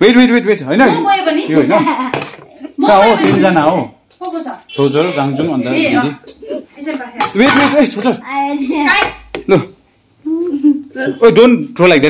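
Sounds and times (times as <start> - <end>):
children and adults talking: 0.8 - 9.3.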